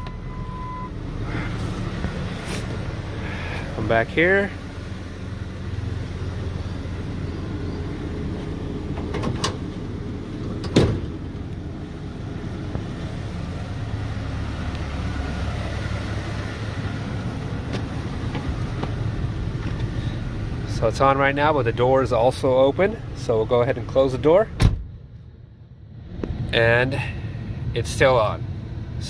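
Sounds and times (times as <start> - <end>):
steady low rumble: 0.0 - 29.0
tailgate dropping open clunk: 8.9 - 9.7, 10.4 - 11.4
tailgate latch clicks: 9.0 - 9.6.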